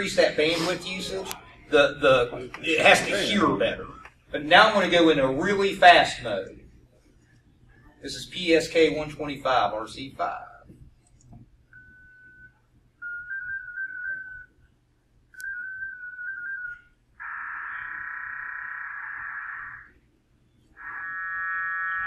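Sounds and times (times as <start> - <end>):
many parallel data tones: 15.4 - 20.0, 20.6 - 22.0
warbling single-tone bursts: 17.2 - 20.0.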